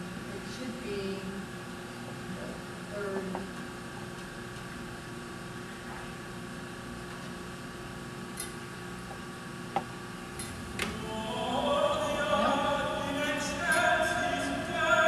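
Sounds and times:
steady electrical hum: 0:00.0 - 0:15.0
sharp click: 0:08.4 - 0:08.6.

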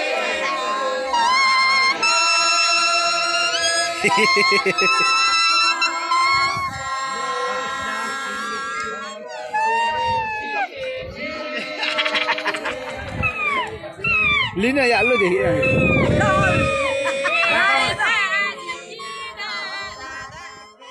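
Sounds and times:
leaves blown as reed instruments: 0:00.9 - 0:10.8.

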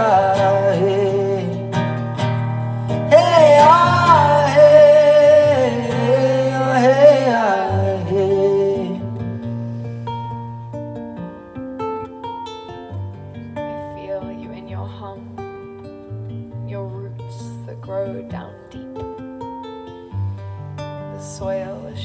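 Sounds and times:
acoustic guitar playing: 0:00.0 - 0:22.0.

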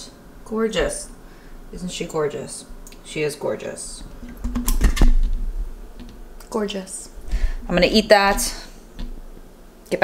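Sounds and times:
sharp clicks and knocks: 0:04.2 - 0:05.4.

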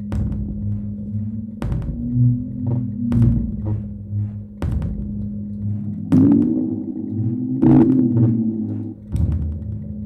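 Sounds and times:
low electronic hum: 0:00.0 - 0:10.0
low pitched electronic hits: 0:01.5 - 0:09.6.

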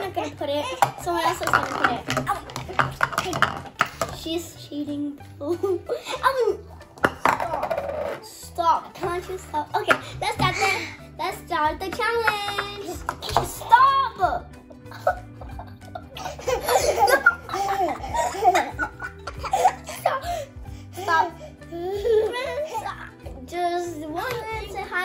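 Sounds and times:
light background music: 0:00.0 - 0:25.0
girl laughing: 0:05.4 - 0:06.5, 0:14.9 - 0:20.5
bowl knocking on tabletop: 0:07.0 - 0:07.9.

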